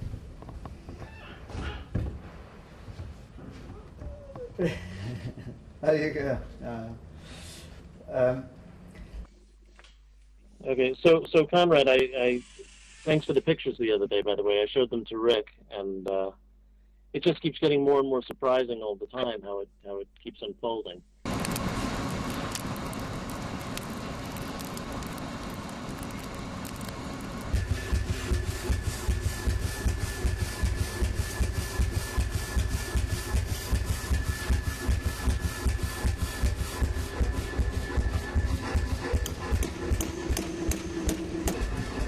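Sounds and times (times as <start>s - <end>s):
machine drone: 10.8s - 14.8s, 21.2s - 42.0s
power hammer pounding: 27.4s - 42.0s.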